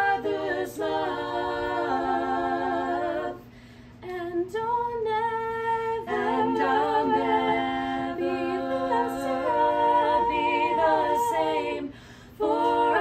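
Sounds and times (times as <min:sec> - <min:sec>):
women singing a cappella: 0:00.0 - 0:13.0.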